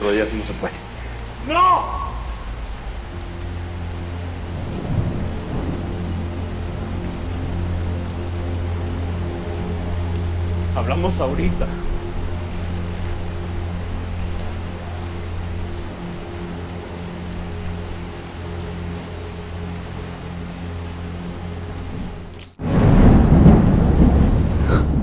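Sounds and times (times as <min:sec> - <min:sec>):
steady rain falling: 0:00.0 - 0:25.0
thunder crash rumbling: 0:01.7 - 0:07.3, 0:22.6 - 0:25.0.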